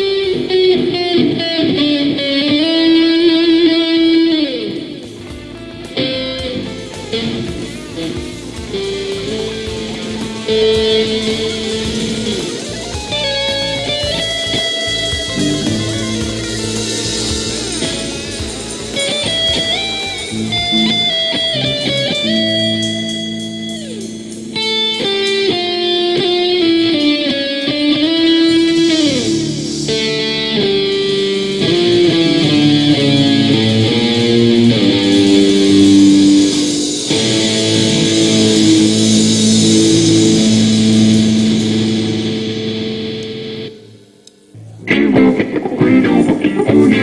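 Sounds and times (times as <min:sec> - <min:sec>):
rock band playing: 0:00.0 - 0:44.1, 0:44.8 - 0:47.0
electric guitar melodic line: 0:00.0 - 0:47.0.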